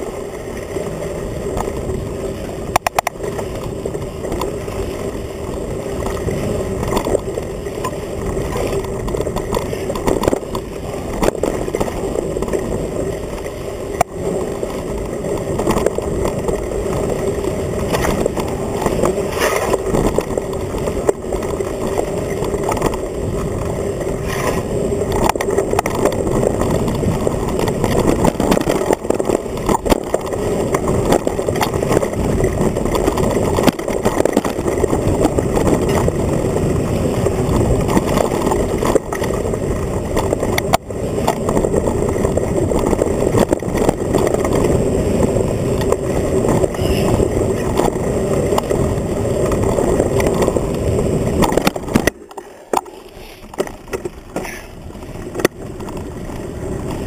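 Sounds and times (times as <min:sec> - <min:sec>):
bike tyres rumbling on dirt: 0:00.0 - 0:57.0
bike frame rattling clicks: 0:00.7 - 0:57.0.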